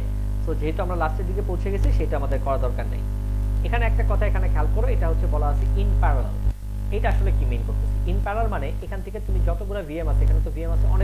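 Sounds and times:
electrical mains hum: 0.0 - 11.0
man lecturing: 0.4 - 3.0, 3.6 - 11.0.

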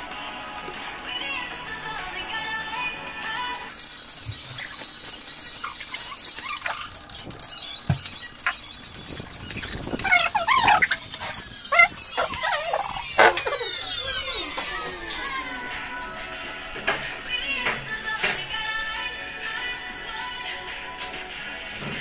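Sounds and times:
background music: 0.0 - 5.2, 9.8 - 22.0
cling film squeaking and crackling: 3.6 - 14.9.

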